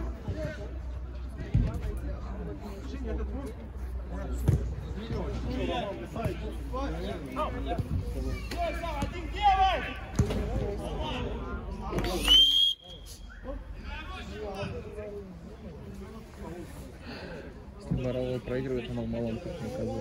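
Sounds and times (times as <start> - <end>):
referee's whistle: 12.1 - 13.5.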